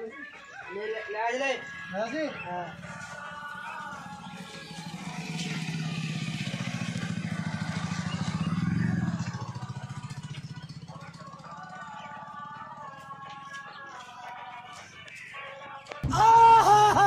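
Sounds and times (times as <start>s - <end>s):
motorcycle engine passing by: 1.6s - 15.1s.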